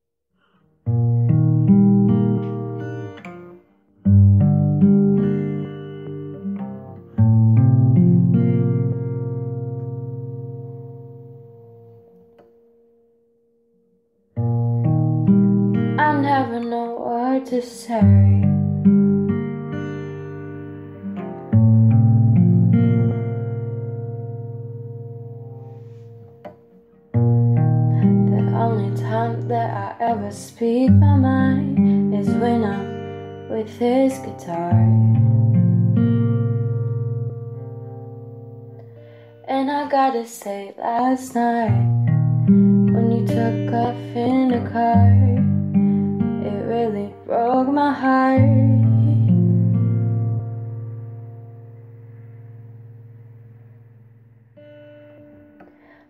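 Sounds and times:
strummed guitar chords: 0.9 - 13.2, 18.0 - 39.8, 41.6 - 56.0
guitar chord ringing: 0.9 - 16.6, 18.1 - 30.2, 30.8 - 39.4, 41.8 - 56.0.

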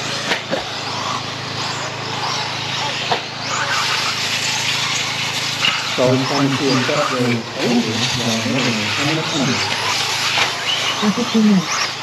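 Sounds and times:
low background hum: 0.0 - 12.0
rc car motors revving: 0.0 - 12.0.

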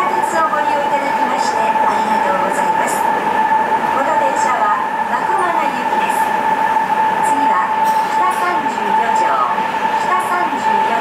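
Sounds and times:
steady high-pitched tone: 0.0 - 11.0
subway car running noise: 0.0 - 11.0.

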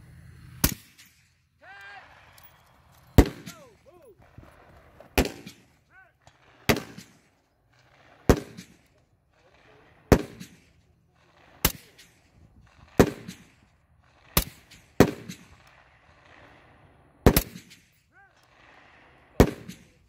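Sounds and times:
rifle shots with echo: 0.6 - 1.3, 2.1 - 20.0.

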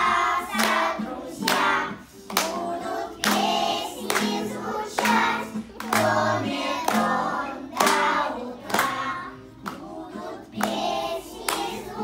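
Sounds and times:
acoustic guitar: 0.0 - 12.0
children singing: 0.0 - 12.0.

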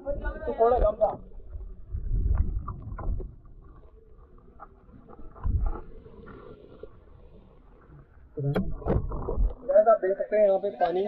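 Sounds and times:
underwater sloshing rumble: 0.0 - 10.0
knocks underwater: 2.1 - 3.4, 8.5 - 9.6.

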